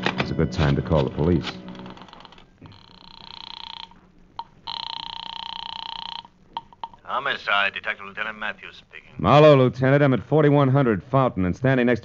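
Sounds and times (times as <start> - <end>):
telephone ringing over the line: 1.6 - 7.2.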